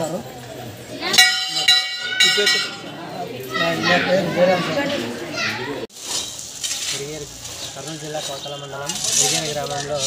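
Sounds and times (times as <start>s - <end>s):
people talking and calling: 0.0s - 10.0s
children's voices: 0.6s - 5.9s
bell ringing: 1.2s - 2.8s.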